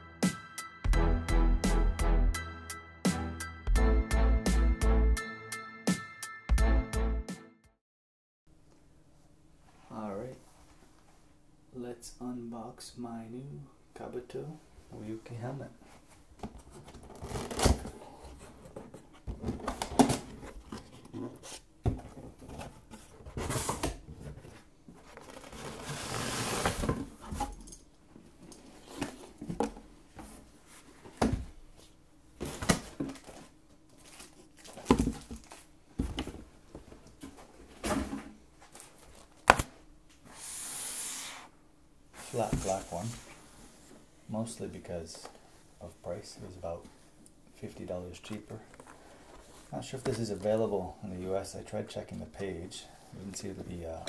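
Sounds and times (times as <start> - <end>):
cardboard scraping and rustling: 16.4 - 27.6, 42.2 - 43.4.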